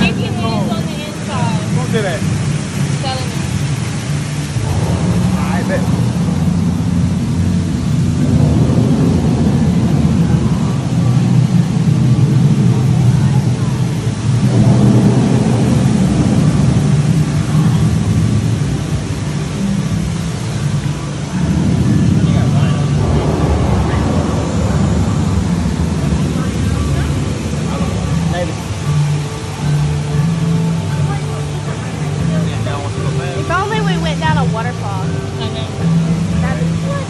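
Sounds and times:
amusement ride rumbling: 0:00.0 - 0:37.0
indistinct voices: 0:00.0 - 0:37.0.

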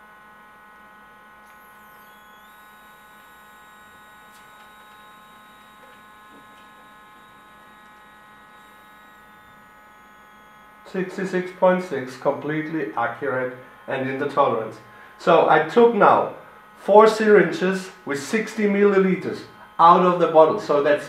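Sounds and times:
faint electrical hum: 0:00.0 - 0:21.0
faint high whine: 0:01.4 - 0:21.0.

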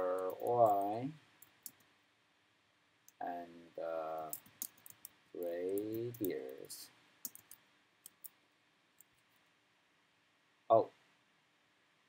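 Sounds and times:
computer keyboard keystrokes: 0:04.2 - 0:06.6, 0:07.2 - 0:08.3.

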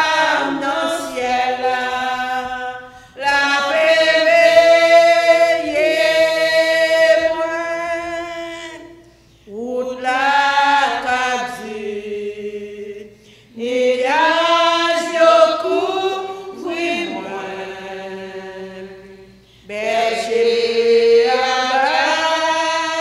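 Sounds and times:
women singing a hymn: 0:00.0 - 0:23.0.

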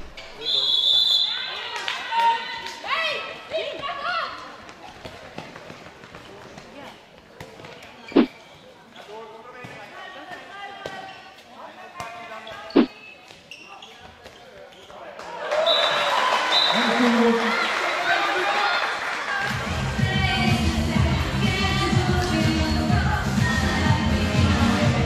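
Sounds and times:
handball bouncing on hall floor: 0:03.7 - 0:08.2.

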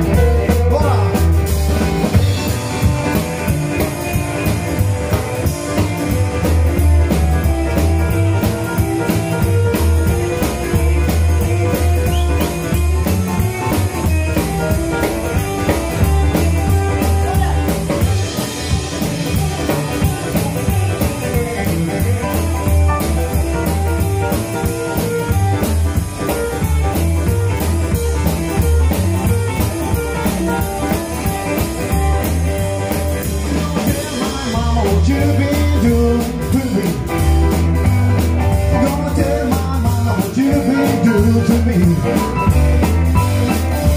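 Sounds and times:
drum kit: 0:00.0 - 0:43.9
electric guitar: 0:00.0 - 0:43.9
electric keyboard: 0:00.0 - 0:43.9
upright bass: 0:00.0 - 0:43.9.

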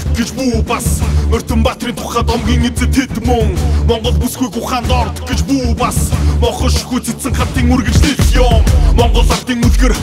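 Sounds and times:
deep bass: 0:00.0 - 0:10.0
man rapping over a beat: 0:00.0 - 0:10.0.

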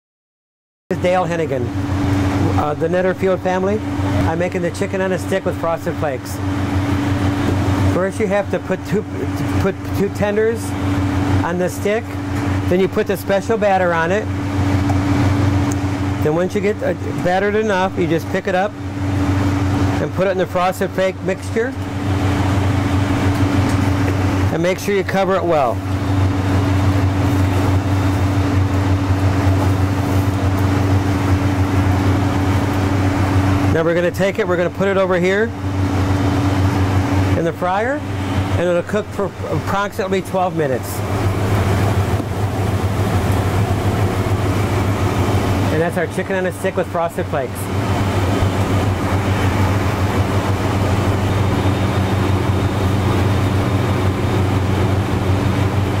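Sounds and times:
loud machine hum: 0:00.9 - 0:56.0.

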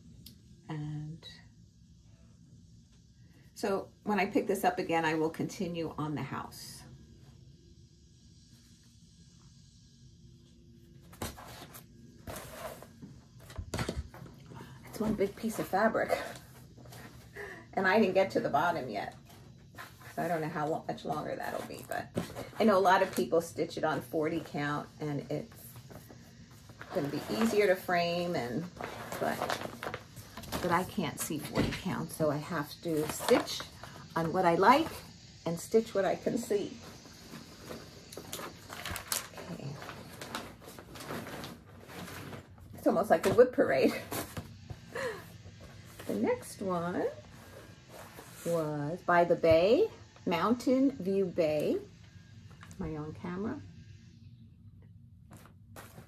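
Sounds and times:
rustling of things handled: 0:25.7 - 0:35.0, 0:36.3 - 0:46.4, 0:55.3 - 0:56.0
fabric rustling: 0:55.3 - 0:56.0.

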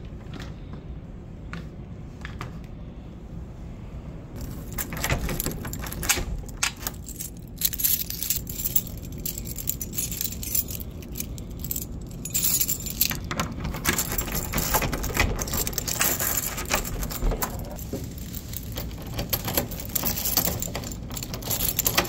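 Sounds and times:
metal keys jangling: 0:04.4 - 0:22.0.

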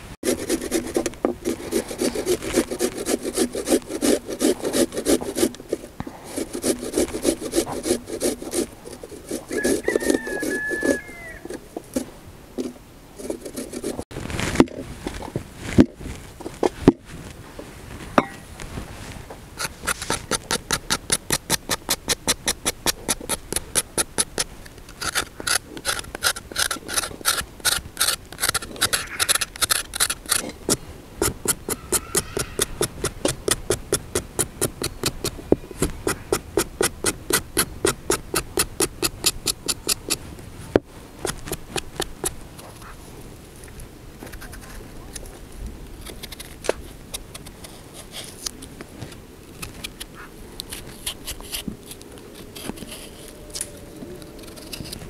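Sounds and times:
potato grated on metal grater: 0:00.2 - 0:11.1, 0:13.2 - 0:14.0, 0:19.6 - 0:30.5, 0:31.4 - 0:35.1.

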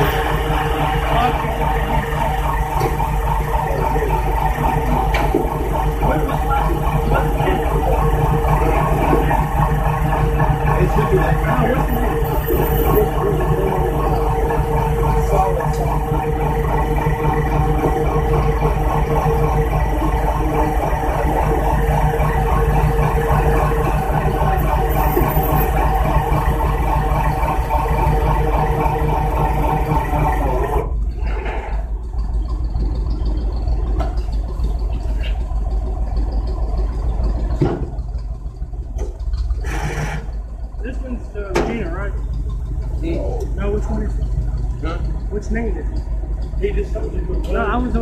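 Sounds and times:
truck engine running: 0:00.0 - 0:48.0.

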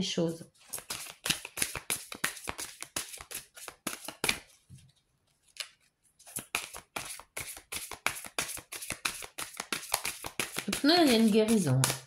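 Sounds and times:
cards being shuffled: 0:00.6 - 0:12.0.

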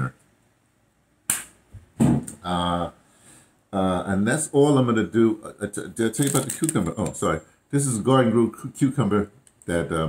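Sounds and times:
person speaking: 0:00.0 - 0:00.2, 0:03.8 - 0:10.0
sharp clack: 0:01.3 - 0:01.6.

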